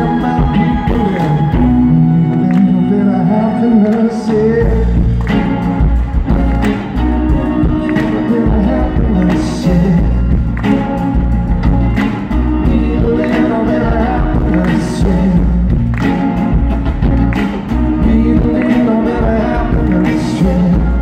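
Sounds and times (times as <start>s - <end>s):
man singing: 0.0s - 5.3s, 6.1s - 10.5s, 12.3s - 15.8s, 17.8s - 21.0s
upright double bass: 0.0s - 21.0s.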